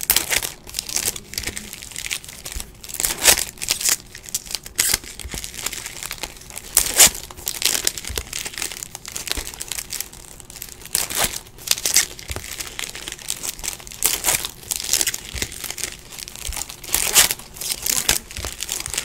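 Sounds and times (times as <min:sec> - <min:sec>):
card pack wrappers crinkling: 0:00.0 - 0:19.0.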